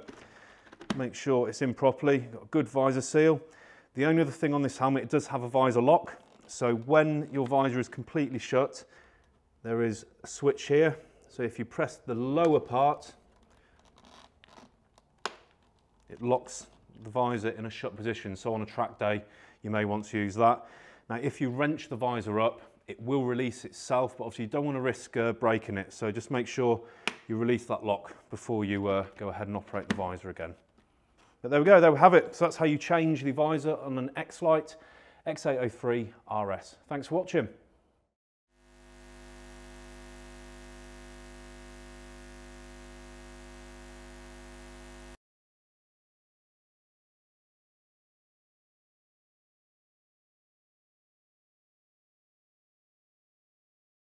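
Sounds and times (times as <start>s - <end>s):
electronic drone with low hum: 38.6s - 45.2s.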